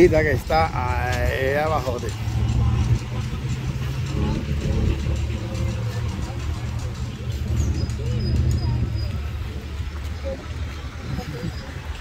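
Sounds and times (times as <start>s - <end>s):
faint voices: 0.0s - 12.0s
vehicle engine idling: 0.0s - 12.0s.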